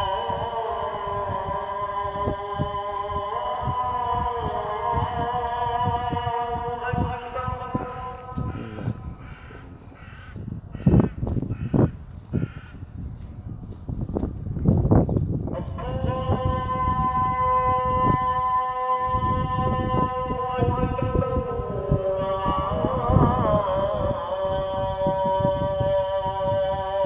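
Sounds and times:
call to prayer over loudspeakers: 0.0s - 11.1s, 15.4s - 27.0s
crow cawing: 8.5s - 12.8s.

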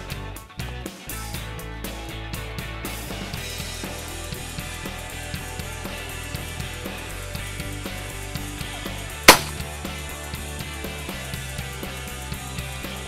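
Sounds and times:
rock music with steady beat: 0.0s - 13.0s
loud shotgun shot: 9.3s - 9.6s.

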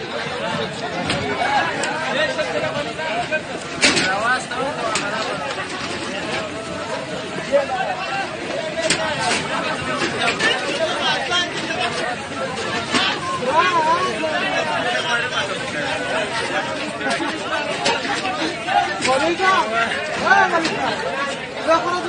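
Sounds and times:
men chattering and calling out: 0.0s - 22.0s.

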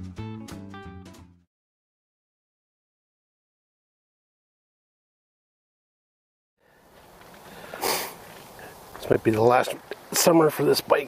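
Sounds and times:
faint outdoor hiss: 6.6s - 11.0s
person sniffing: 7.5s - 8.8s.

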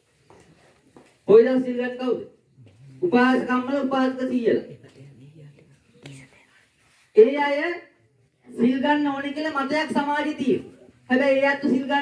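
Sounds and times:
faint murmur of man's voice: 2.5s - 3.3s.

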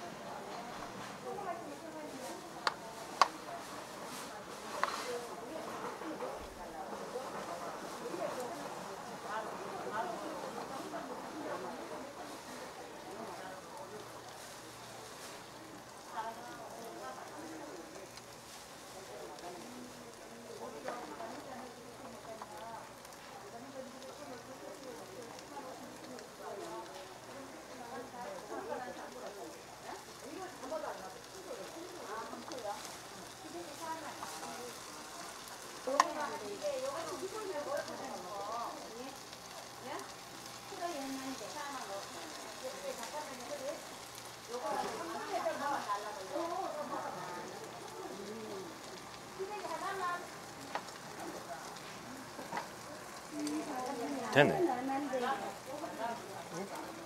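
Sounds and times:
roots sizzling in a frying pan: 0.0s - 57.0s.

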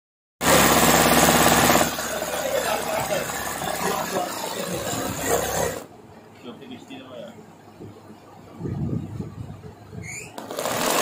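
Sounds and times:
sewing machine needle clattering: 10.4s - 11.0s.

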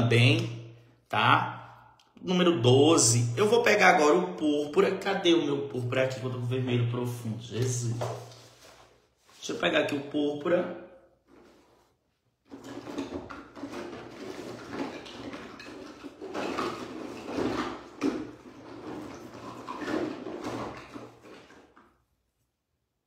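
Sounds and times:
plastic pots knocking and scraping: 7.4s - 9.4s, 11.2s - 22.0s.

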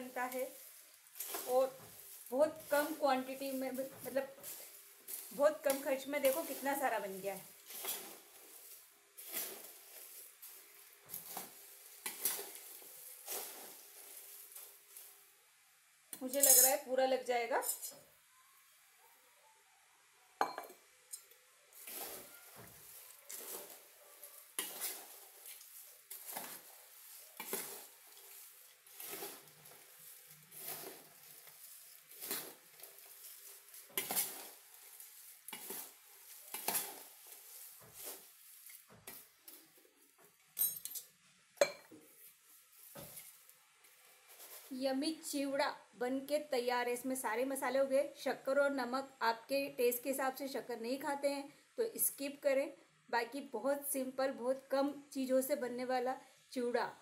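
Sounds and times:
spoon rustling and scraping snack: 0.0s - 15.4s, 21.1s - 41.2s, 42.0s - 44.9s
metal clinking on steel plate: 16.3s - 16.8s, 40.6s - 41.9s.

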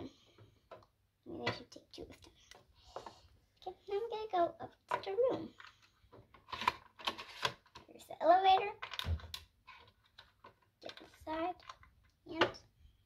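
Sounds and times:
child's voice: 1.3s - 2.6s, 3.6s - 5.6s, 7.9s - 8.8s, 10.8s - 11.6s, 12.3s - 12.6s.

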